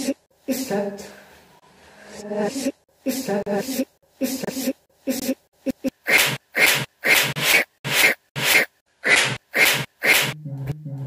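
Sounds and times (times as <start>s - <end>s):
man making hissing vocal bursts: 2.4s - 6.0s.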